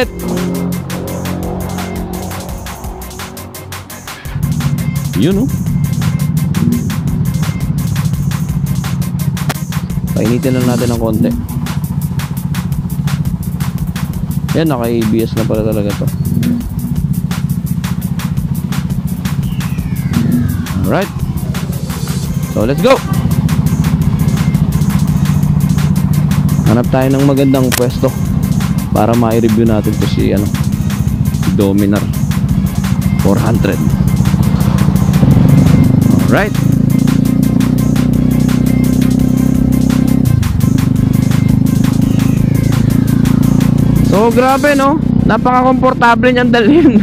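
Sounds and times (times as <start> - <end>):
electronic music with deep bass: 0.0 - 45.2
motorcycle engine idling: 0.0 - 47.0.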